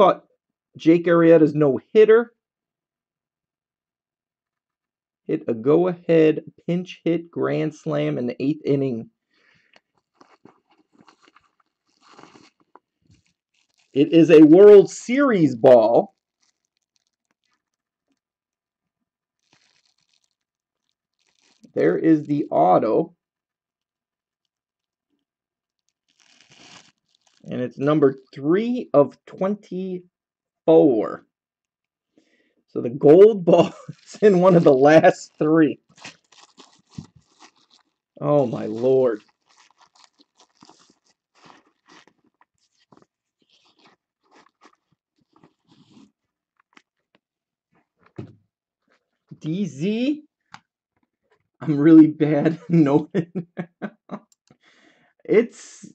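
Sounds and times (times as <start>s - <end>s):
crinkly rustle: 9.7s - 14.4s, 16.1s - 18.2s, 19.3s - 21.8s, 25.7s - 27.5s, 33.8s - 47.1s
cards and packaging clicking and rustling: 19.5s - 20.4s, 26.1s - 27.5s.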